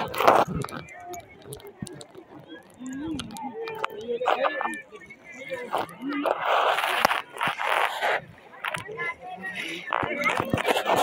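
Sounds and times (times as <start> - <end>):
water splashing around inner tubes: 0.0 - 11.0.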